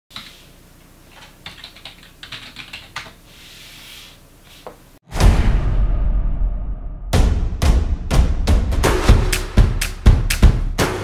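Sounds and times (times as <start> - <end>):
computer keyboard typing: 1.1 - 3.2.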